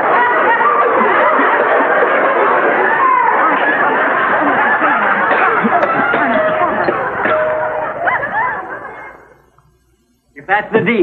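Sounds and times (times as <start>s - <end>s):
audience laughter: 0.0s - 9.5s
high yelping laughs: 0.2s - 9.3s.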